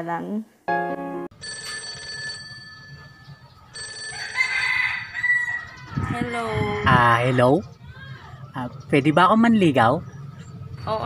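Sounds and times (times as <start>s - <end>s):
phone ringtone ringing: 1.2s - 5.7s.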